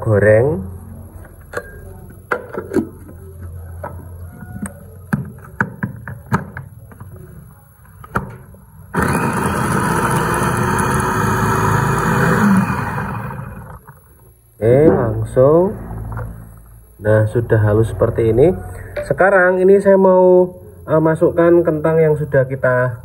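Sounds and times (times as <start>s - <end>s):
electric food chopper running: 8.9s - 14.0s.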